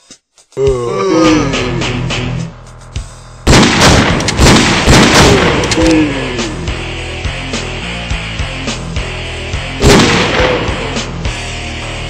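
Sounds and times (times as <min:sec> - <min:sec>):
rapid gunshots: 0:03.5 - 0:06.7, 0:09.8 - 0:11.2.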